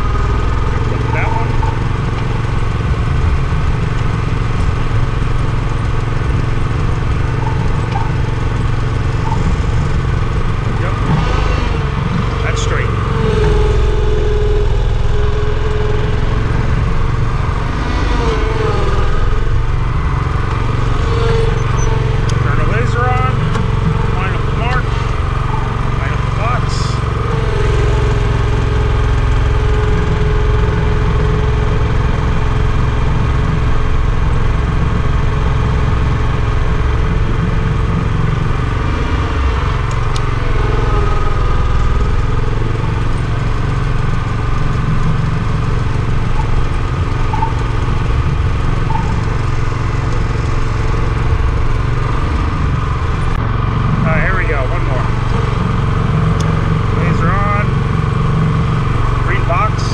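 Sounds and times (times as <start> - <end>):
small gasoline engine running: 0.0 - 59.9.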